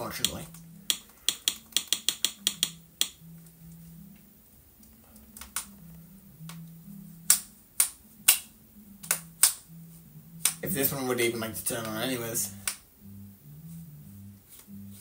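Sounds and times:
sharp clicks: 0.2 - 3.2.

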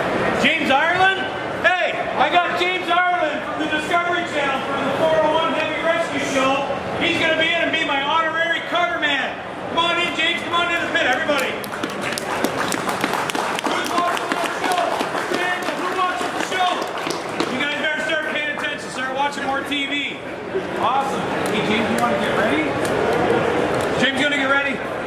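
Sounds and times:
crowd chatter: 0.0 - 25.0
men talking: 0.4 - 11.7, 13.5 - 23.0, 23.9 - 24.9
footsteps in a hall: 11.3 - 19.0.

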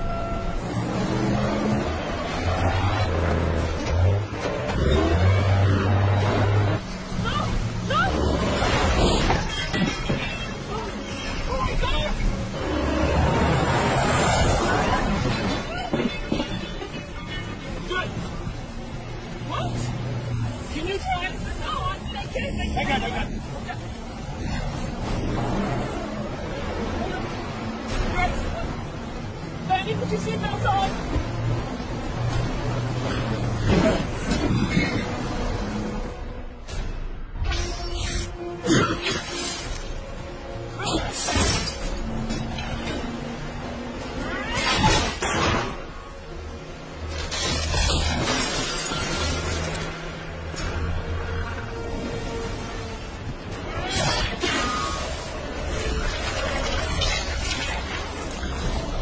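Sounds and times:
low rumbling music: 0.0 - 59.0
people talking: 7.2 - 8.3, 9.4 - 12.3, 14.6 - 18.2, 20.7 - 24.0, 26.9 - 28.8, 29.6 - 31.0
glass shattering: 47.2 - 49.8.

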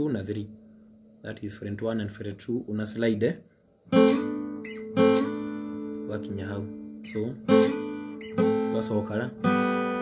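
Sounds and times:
acoustic guitar notes ringing: 0.0 - 10.0.

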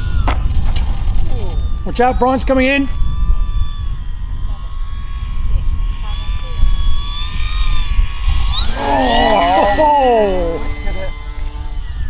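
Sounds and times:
model plane motor whining: 0.0 - 12.0
wind rumble on microphone: 0.0 - 12.0.

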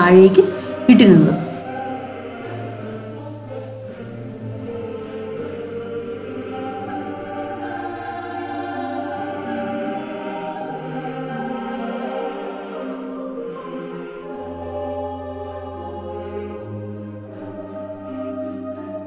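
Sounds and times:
choir singing long held chords: 0.0 - 19.0.

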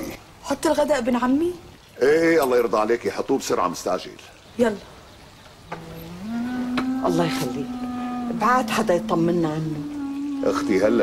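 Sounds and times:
low sustained score note: 5.8 - 11.0.

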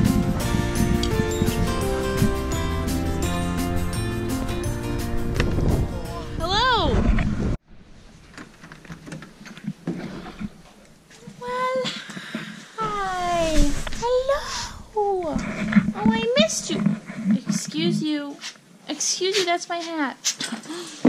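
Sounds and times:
background music with held notes: 0.0 - 6.5.

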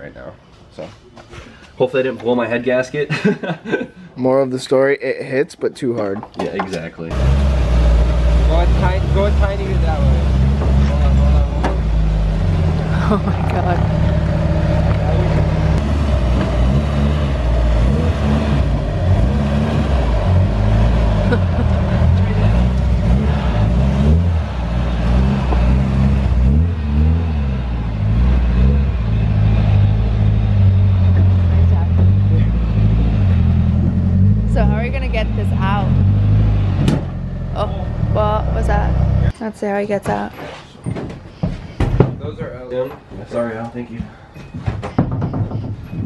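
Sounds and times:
car engine revving: 7.1 - 39.3.

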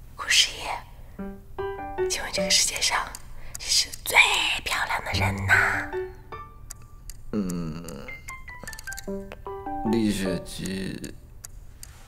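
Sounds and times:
woman whispering: 0.2 - 1.0, 2.1 - 5.9.

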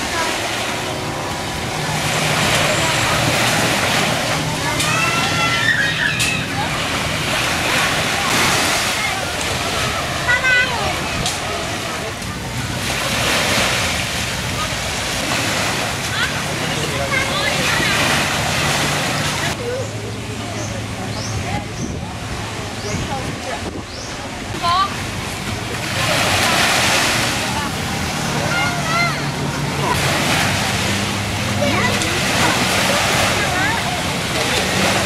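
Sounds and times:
small waves washing onto beach: 0.0 - 19.8, 20.8 - 35.0
faint distant voices: 0.0 - 35.0
wind on microphone: 21.1 - 25.2.

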